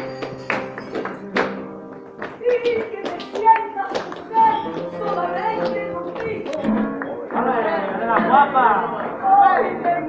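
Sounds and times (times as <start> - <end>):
hand claps and percussive taps: 0.0 - 8.4.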